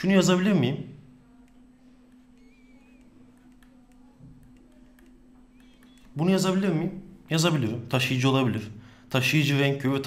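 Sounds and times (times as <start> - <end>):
stylus ticking on a tablet: 1.4 - 6.1.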